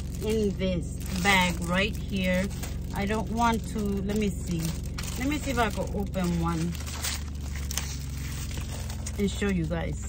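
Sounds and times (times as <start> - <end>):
low steady hum: 0.0 - 10.0
plastic packaging crinkling: 0.0 - 10.0.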